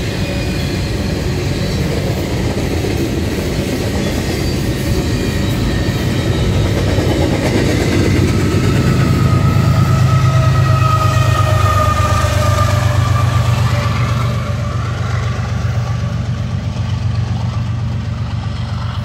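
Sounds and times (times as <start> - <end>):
diesel locomotive engine rumbling: 0.0 - 19.0.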